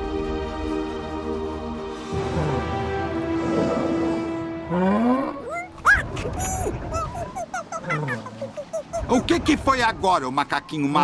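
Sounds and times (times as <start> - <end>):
background score music: 0.0 - 7.5.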